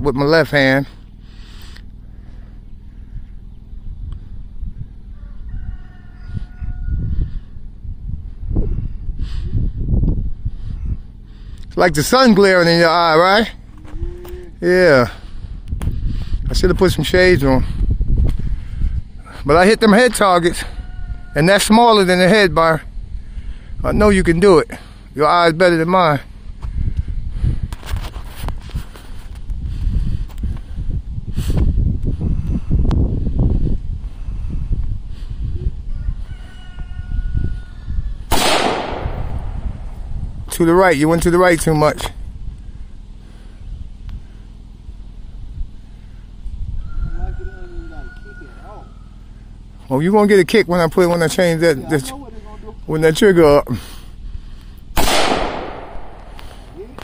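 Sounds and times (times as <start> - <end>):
wind rumble on microphone: 0.0 - 57.0
rifle shots: 38.3 - 39.6, 55.0 - 56.6.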